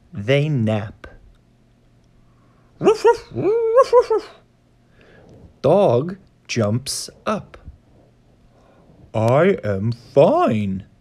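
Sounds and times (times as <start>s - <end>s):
dog whining: 2.8s - 4.4s.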